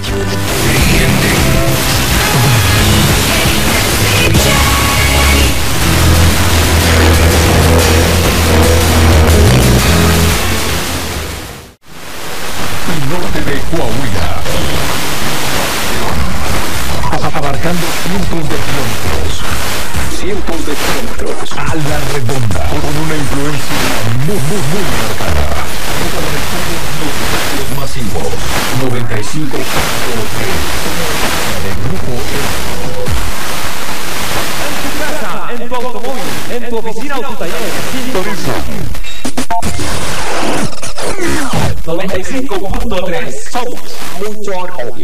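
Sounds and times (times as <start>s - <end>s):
low bass notes: 0.0s - 11.8s, 14.0s - 34.6s
radio static hiss: 0.0s - 45.0s.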